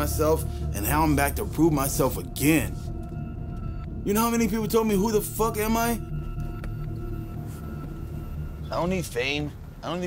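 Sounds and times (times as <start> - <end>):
low music drone: 0.0 - 10.0.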